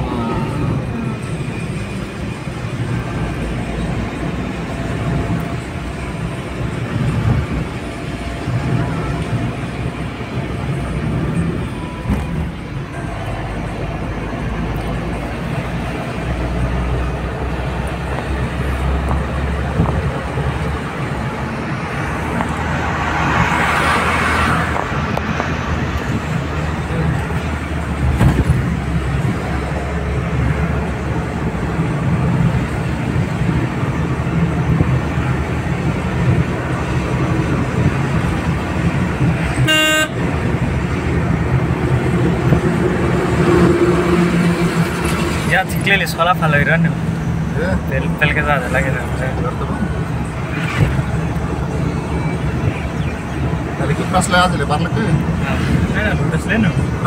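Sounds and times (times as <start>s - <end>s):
car engine and road rumble: 0.0s - 57.0s
car horn toot: 39.6s - 40.4s.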